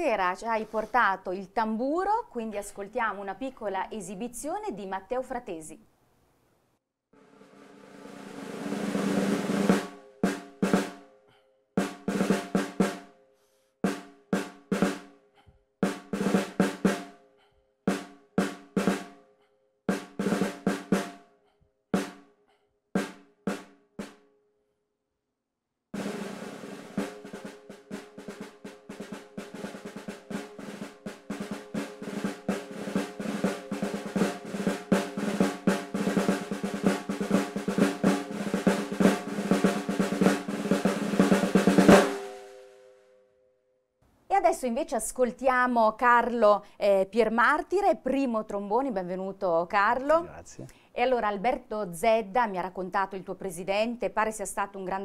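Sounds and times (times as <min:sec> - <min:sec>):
snare drum played with sticks: 0:07.4 - 0:11.0, 0:11.8 - 0:13.1, 0:13.8 - 0:15.1, 0:15.8 - 0:17.2, 0:17.9 - 0:19.2, 0:19.9 - 0:21.2, 0:26.0 - 0:42.7.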